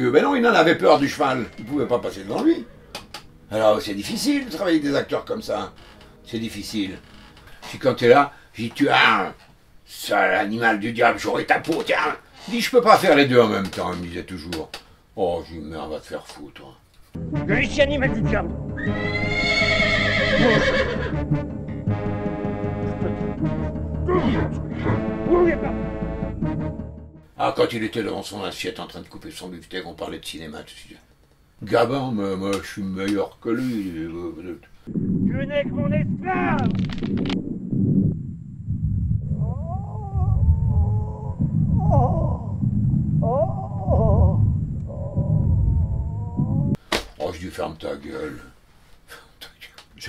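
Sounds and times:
horse whinnying: 18.8s - 21.2s
low music drone: 21.1s - 27.2s
low rumble: 34.9s - 46.8s.

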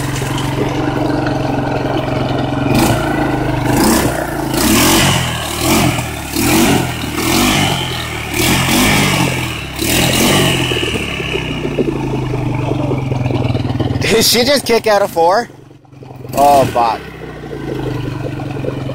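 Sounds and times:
quad engine revving hard: 0.0s - 11.8s, 16.2s - 18.9s
wheels churning in mud: 0.0s - 18.9s.

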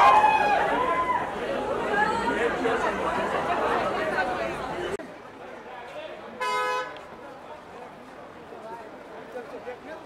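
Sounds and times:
crowd chatter and shouting: 0.0s - 10.0s.

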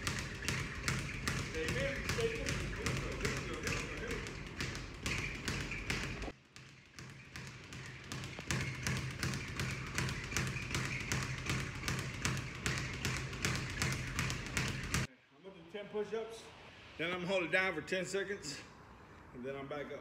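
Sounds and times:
speed bag being punched: 0.0s - 15.1s.

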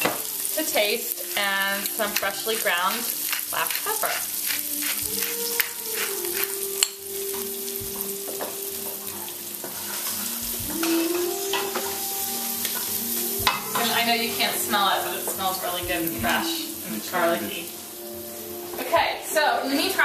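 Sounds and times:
food sizzling in oil: 0.0s - 20.0s.

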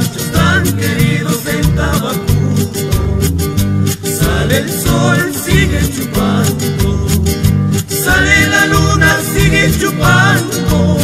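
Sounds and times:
folk music with guitars and bass: 0.0s - 11.0s.

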